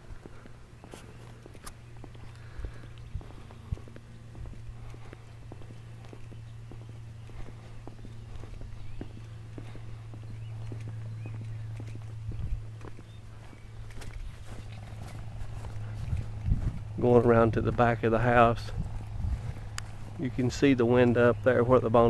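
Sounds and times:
soft footsteps walking: 0.0s - 22.0s
steady low hum: 0.0s - 22.0s.

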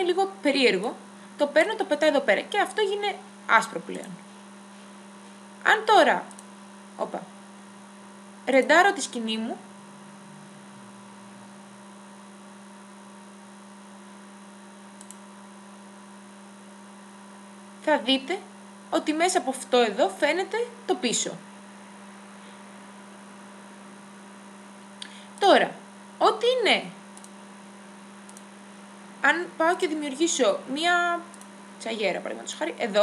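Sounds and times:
low electrical hum: 0.0s - 33.0s
faint click: 6.3s - 6.5s, 15.0s - 15.2s, 27.2s - 27.4s, 28.3s - 28.5s.

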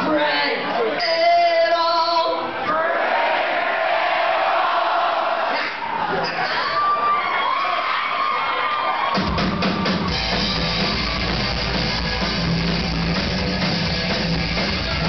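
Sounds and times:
crowd cheering and whooping: 3.3s - 15.0s
band playing rockabilly punk: 9.0s - 15.0s
drum hits: 9.2s - 15.0s
double bass line: 10.0s - 15.0s.

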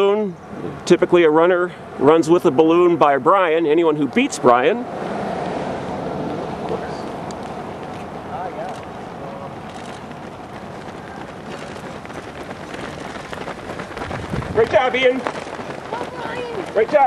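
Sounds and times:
many footsteps on pavement: 0.8s - 17.0s
faint voices: 8.3s - 17.0s.

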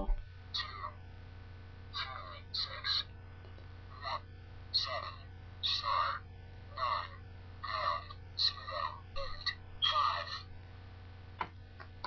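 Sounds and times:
recorded voice calling out digits: 0.0s - 1.0s, 1.9s - 3.1s, 3.9s - 10.5s.

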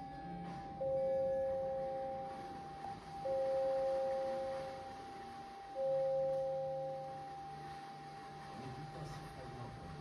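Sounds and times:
high sustained tone: 0.0s - 10.0s
low sustained tone: 0.0s - 10.0s.

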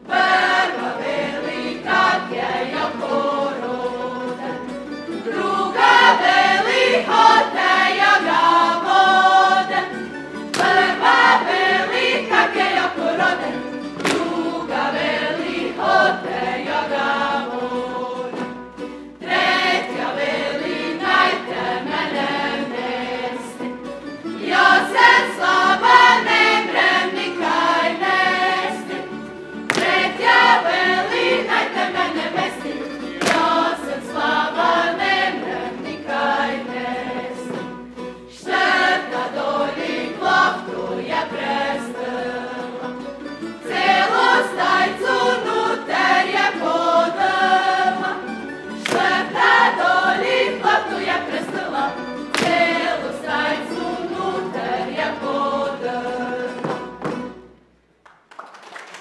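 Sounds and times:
group singing in unison: 0.0s - 57.4s
string band playing: 0.0s - 57.7s.

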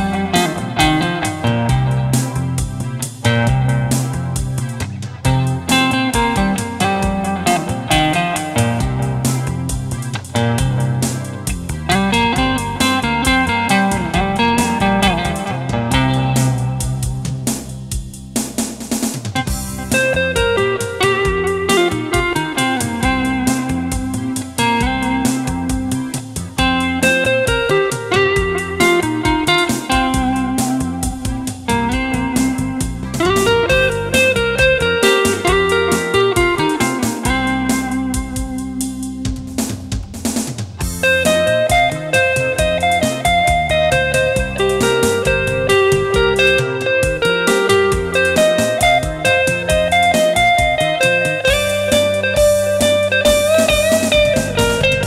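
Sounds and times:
electric guitar melody: 0.0s - 18.3s, 19.3s - 55.0s.

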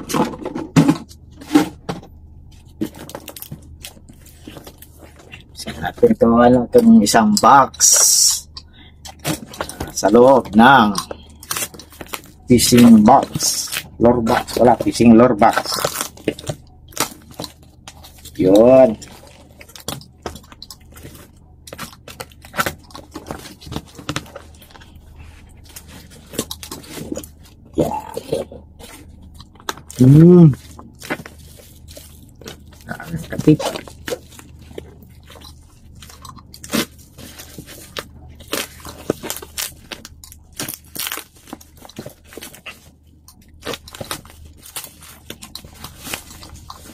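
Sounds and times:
bubble wrap crinkling: 0.0s - 46.9s
cardboard crackles and taps: 30.6s - 46.9s.

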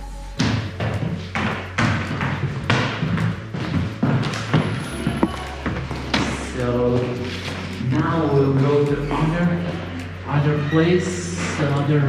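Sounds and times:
low hum or music: 0.0s - 12.0s
footsteps on hard floor: 0.4s - 8.8s.

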